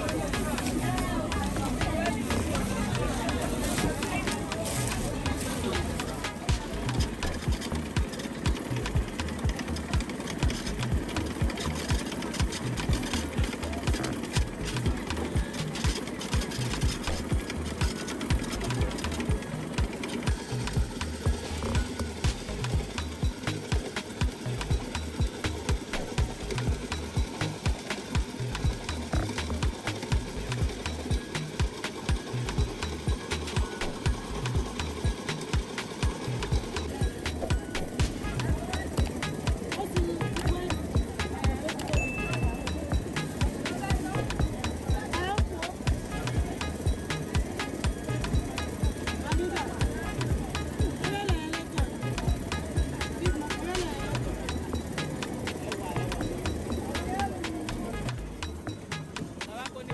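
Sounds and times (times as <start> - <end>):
afrobeat music: 0.0 - 59.9
motorized grinding mill running: 0.0 - 59.9.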